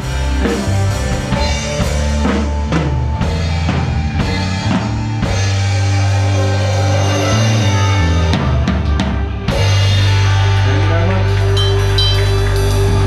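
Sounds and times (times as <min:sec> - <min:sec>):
bass and chords: 0:00.0 - 0:13.0.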